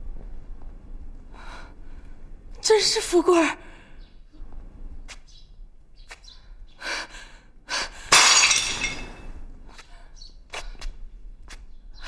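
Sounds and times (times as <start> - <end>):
pottery jar smashing: 8.1 - 9.3.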